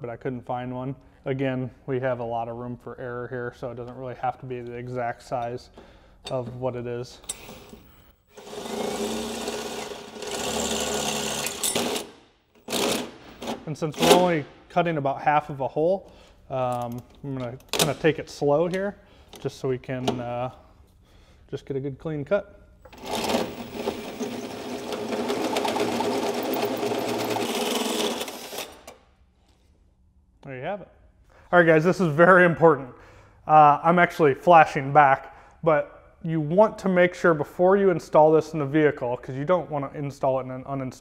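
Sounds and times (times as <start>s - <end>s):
cordless drill cutting sheet metal: 7.3s - 13.2s, 22.9s - 28.9s.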